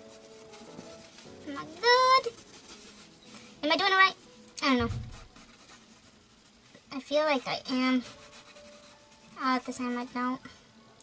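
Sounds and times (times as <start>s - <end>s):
pencil scratching on paper: 0.0s - 10.4s
soft low thump: 4.8s - 5.3s.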